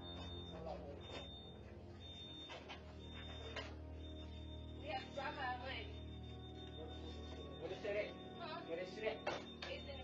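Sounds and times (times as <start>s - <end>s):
high electronic alarm beeping: 0.0s - 10.0s.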